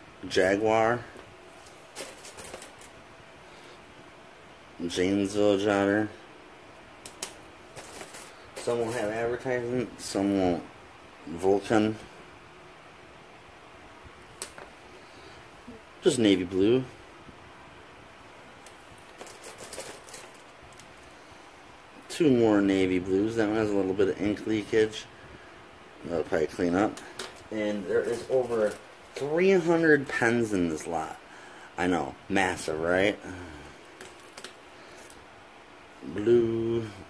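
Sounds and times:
soft rustle: 1.1 - 3.8, 7.6 - 9.5, 18.4 - 21.5.

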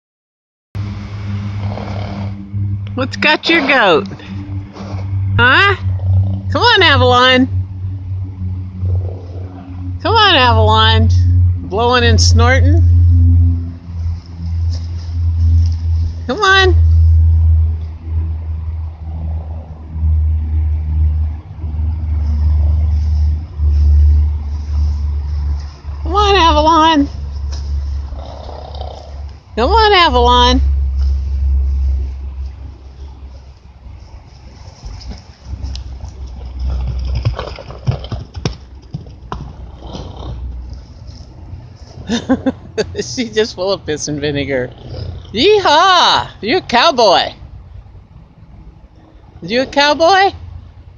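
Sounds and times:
horse hooves thudding on turf: 1.6 - 6.5, 14.0 - 16.3, 27.0 - 29.4, 30.7 - 42.5.

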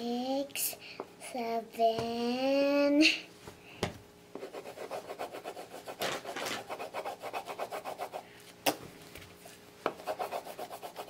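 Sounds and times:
crayon scribbling on paper: 4.4 - 8.2, 9.9 - 11.0.

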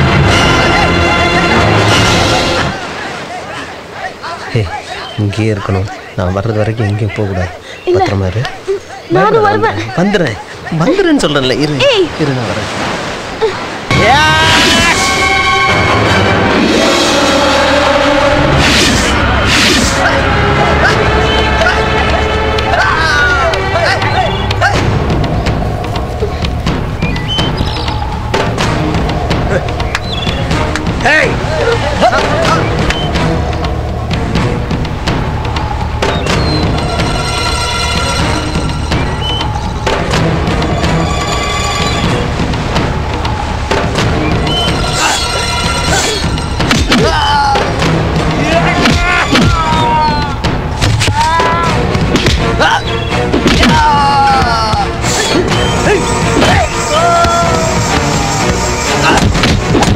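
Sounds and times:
dramatic film score: 0.0 - 59.9
people shouting: 0.2 - 11.1, 13.9 - 41.0, 42.1 - 59.9.

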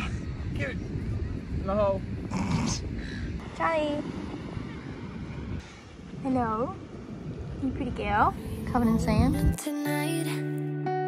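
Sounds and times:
wind rumble on microphone: 0.0 - 9.6.

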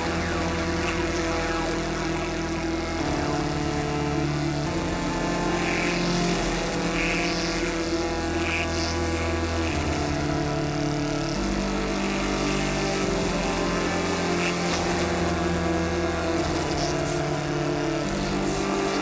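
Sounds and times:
modular synthesizer low tones: 0.0 - 19.0.

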